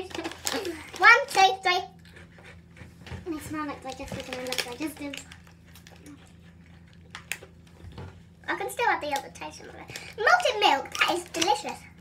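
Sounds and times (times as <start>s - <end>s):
snack packet rustling: 0.0s - 2.7s, 3.6s - 7.8s, 9.0s - 11.9s
biscuits crunching: 0.0s - 12.0s
low steady hum: 0.0s - 12.0s.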